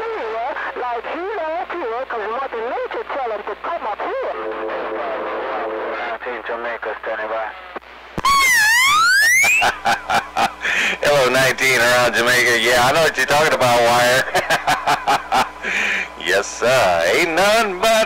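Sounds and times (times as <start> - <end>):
garbled voice over cb radio: 0.6 - 7.6
electronic sweep tone: 8.2 - 9.7.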